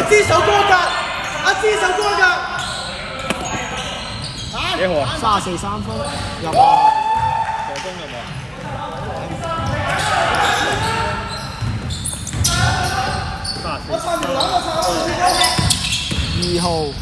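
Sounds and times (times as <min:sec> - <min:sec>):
players' voices: 0:00.0 - 0:17.0
shoes on court floor: 0:06.0 - 0:16.8
basketball bouncing on wooden court: 0:10.7 - 0:13.8, 0:15.5 - 0:16.6.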